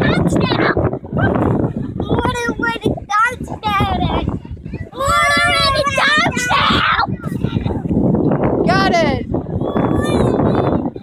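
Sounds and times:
wind on microphone: 0.0 - 11.0.

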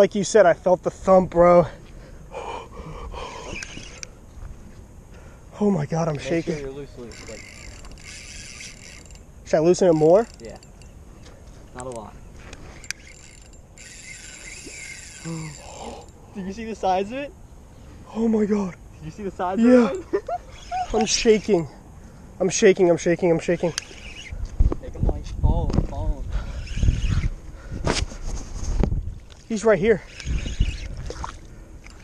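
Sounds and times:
fishing reel rasping: 2.3 - 4.2, 6.0 - 11.1, 11.9 - 17.2, 19.8 - 21.8, 22.6 - 24.5, 26.3 - 28.3, 29.5 - 32.0
fishing reel click: 3.3 - 4.2, 7.1 - 9.3, 9.9 - 10.9, 11.9 - 16.2, 23.3 - 24.5, 30.0 - 31.1.

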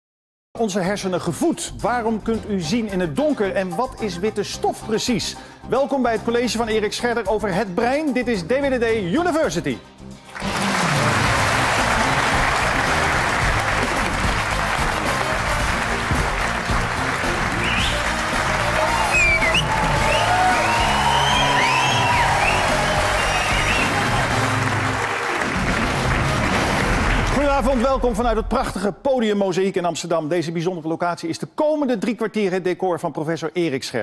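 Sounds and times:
theme music: 1.0 - 29.4
studio audience clapping: 10.2 - 28.2
crowd whooping and whistling: 17.5 - 25.4.

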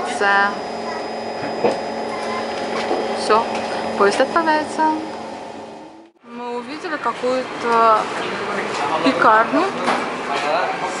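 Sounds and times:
train car interior hum: 0.0 - 10.6.

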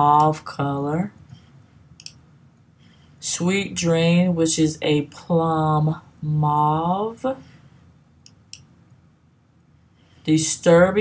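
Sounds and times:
computer mouse click: 2.0 - 2.2.

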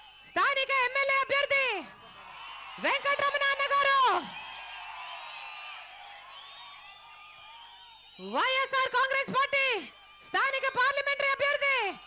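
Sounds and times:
crowd cheering and yelling: 0.0 - 12.0
woman shouting over loudspeakers: 0.2 - 2.0, 2.8 - 4.3, 8.2 - 12.0.

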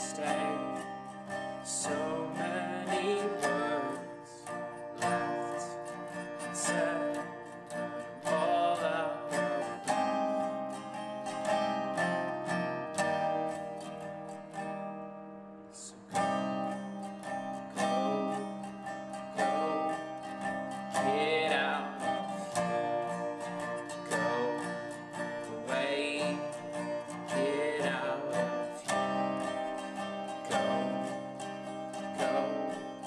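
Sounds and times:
person singing: 0.0 - 14.4, 15.6 - 33.0
resonator guitar strumming chords: 0.0 - 33.0.

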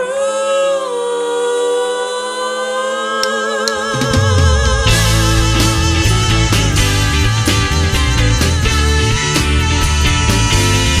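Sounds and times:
band holding sustained chord: 3.7 - 11.0.

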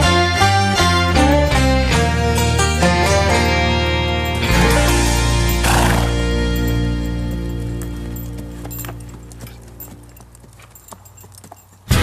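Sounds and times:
loud music: 0.0 - 7.3
country song: 0.0 - 10.5
horse hooves clip-clopping on dirt: 4.4 - 12.0.

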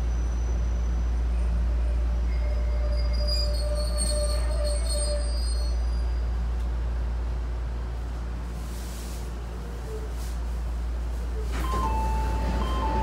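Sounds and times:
high wheel squeal: 0.0 - 6.3
electric train rumble: 0.0 - 13.0.

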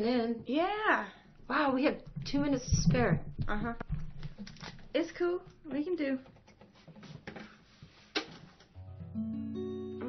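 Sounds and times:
acoustic guitar note ringing: 8.8 - 10.0.

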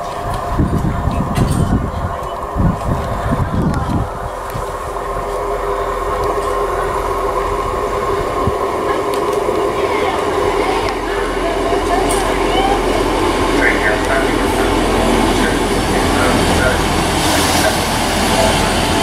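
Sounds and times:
diesel train engine: 0.0 - 19.0
rail noise: 0.0 - 19.0.

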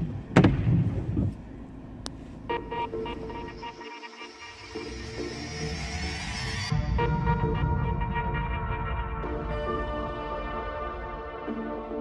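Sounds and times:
car interior rumble: 0.0 - 3.8
background music: 1.9 - 12.0.

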